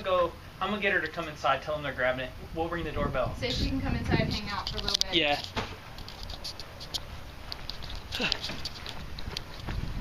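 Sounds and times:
footsteps: 4.1 - 10.0
camera handling rustle and clicks: 4.6 - 9.7.

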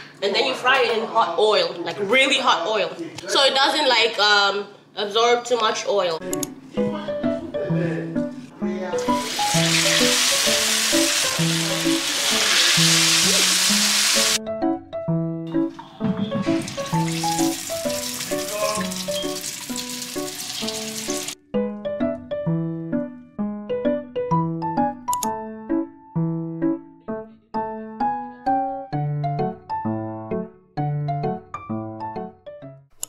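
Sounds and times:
background piano music: 6.2 - 33.0
batter frying in hot oil: 9.2 - 14.4, 16.8 - 21.4.

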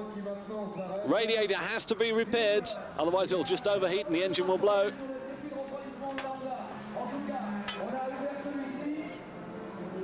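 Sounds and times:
metallic tool clinks: 7.7 - 7.9.

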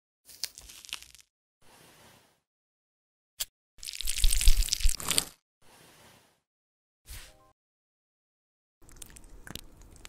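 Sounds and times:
wet crackling peel: 0.3 - 1.3, 3.8 - 5.4.

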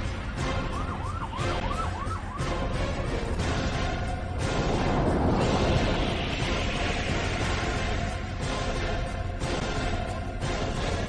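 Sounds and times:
siren wail sound effect: 0.4 - 2.8.

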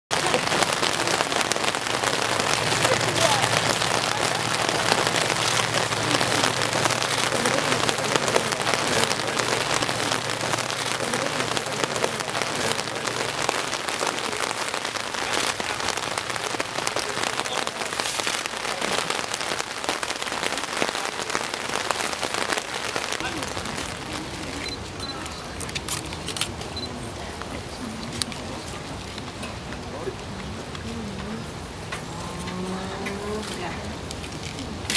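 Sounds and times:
steady rain falling: 0.1 - 34.9.

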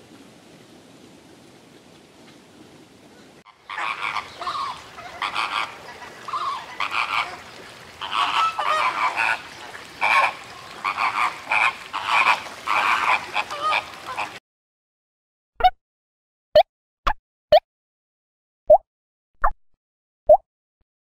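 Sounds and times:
flamingos honking: 3.4 - 14.4.

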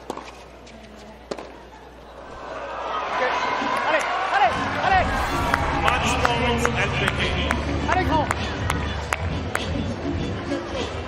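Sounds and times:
low arena background: 4.5 - 11.0.

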